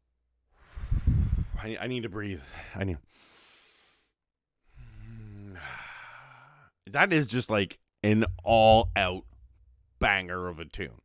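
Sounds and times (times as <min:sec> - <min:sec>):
man breathing in: 0:00.5 - 0:01.6, 0:02.5 - 0:06.7
man sighing: 0:04.8 - 0:06.6.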